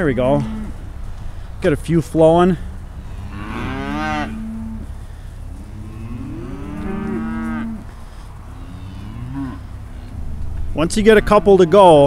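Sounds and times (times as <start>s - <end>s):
steady low rumble: 0.0s - 12.0s
cattle mooing: 2.9s - 12.0s.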